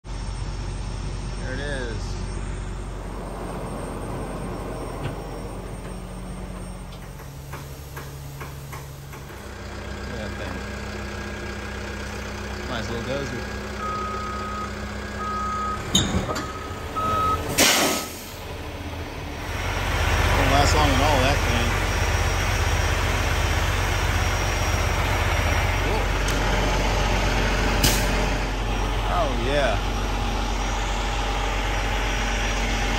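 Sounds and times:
diesel engine idling: 0:00.0 - 0:32.9.

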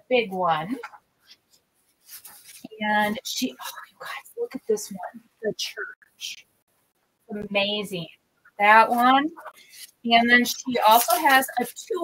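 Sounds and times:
rice paper sheets rustling: 0:01.2 - 0:04.2, 0:08.8 - 0:12.0.

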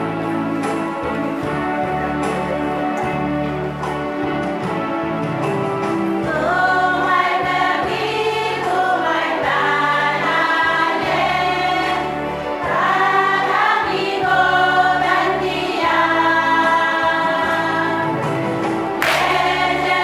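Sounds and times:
women's choir singing: 0:06.2 - 0:20.0.

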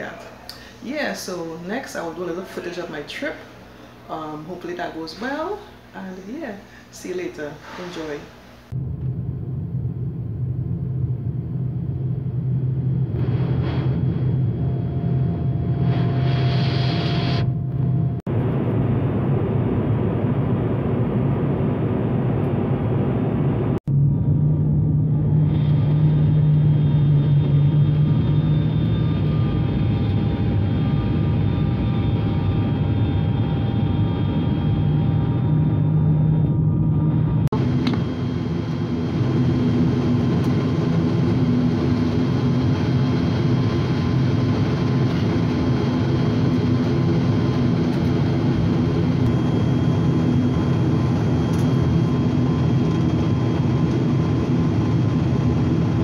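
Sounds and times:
turboprop engines droning: 0:00.0 - 0:56.0.

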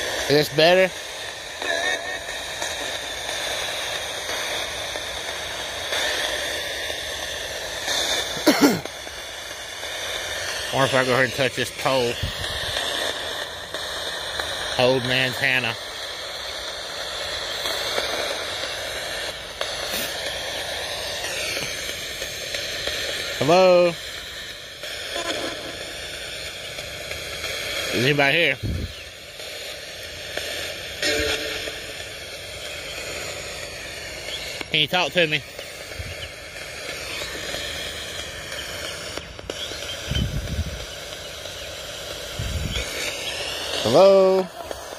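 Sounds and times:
radio static hiss: 0:00.0 - 0:44.9.

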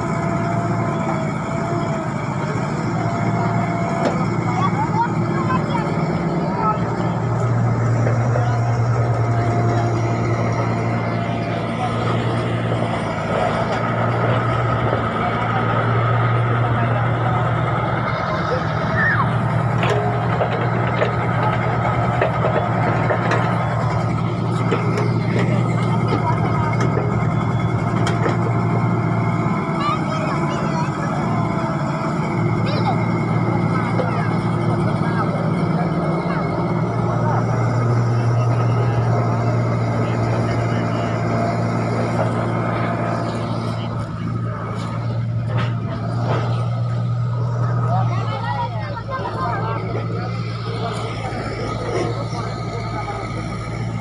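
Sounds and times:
excavator diesel engine running: 0:00.0 - 0:54.0.

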